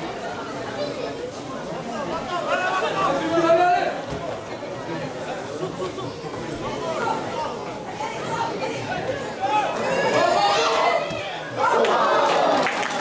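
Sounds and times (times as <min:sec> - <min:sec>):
voices calling and chattering: 0:00.0 - 0:12.6.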